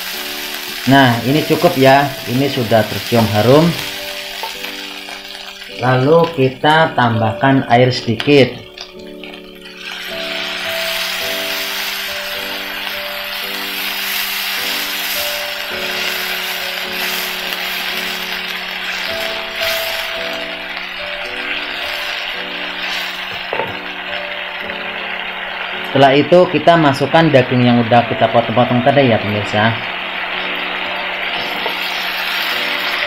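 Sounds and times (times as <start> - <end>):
background music with held notes: 0.0 - 33.0
paste sizzling in hot oil: 0.0 - 33.0.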